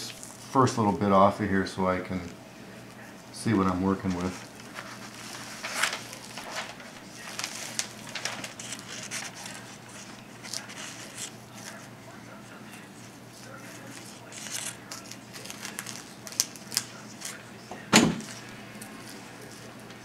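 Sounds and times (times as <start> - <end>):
paper crinkling and rustling: 0.0 - 1.0, 2.2 - 20.0.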